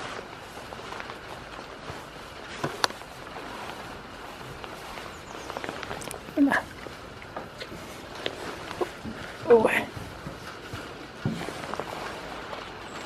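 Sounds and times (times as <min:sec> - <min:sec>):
light rain hissing: 0:00.0 - 0:13.0.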